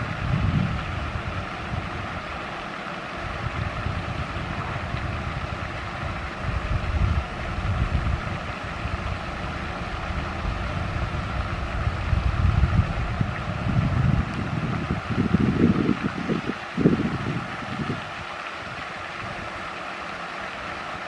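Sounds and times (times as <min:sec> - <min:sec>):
wind buffeting microphone: 0:00.0 - 0:02.5, 0:03.1 - 0:19.6
steady background hum: 0:00.0 - 0:21.0.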